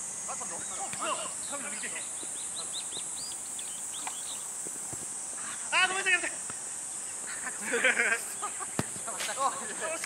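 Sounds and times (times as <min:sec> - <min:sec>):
bird chirping: 0:00.0 - 0:04.7
high-pitched insect buzz: 0:00.0 - 0:09.9.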